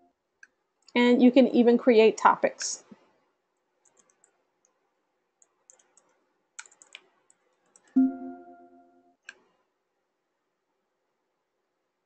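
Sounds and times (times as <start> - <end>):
computer keyboard typing: 3.8 - 4.4, 5.4 - 8.2.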